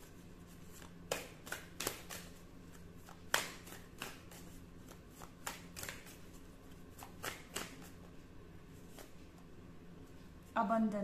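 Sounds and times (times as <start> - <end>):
cards being shuffled: 0.0 - 9.4.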